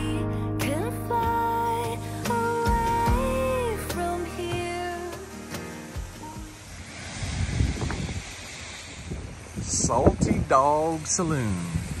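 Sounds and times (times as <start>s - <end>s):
wind buffeting microphone: 6.1s - 12.0s.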